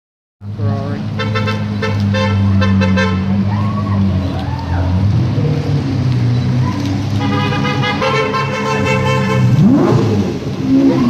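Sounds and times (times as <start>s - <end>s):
car horn short toots: 7.2s - 9.8s.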